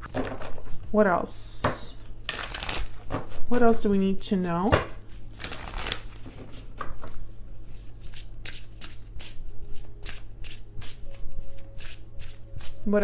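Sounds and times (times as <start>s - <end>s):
cards being shuffled by hand: 2.3s - 3.5s, 5.4s - 12.8s.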